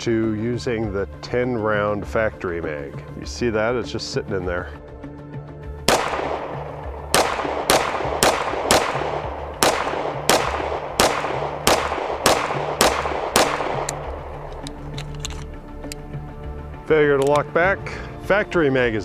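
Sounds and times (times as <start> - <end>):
pistol shots ringing out: 5.9 - 14.7.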